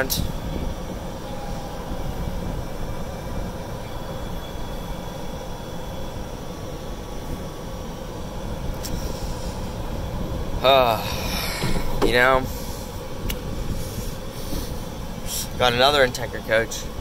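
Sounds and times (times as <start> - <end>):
golf cart motor and tyres: 0.0 - 17.0.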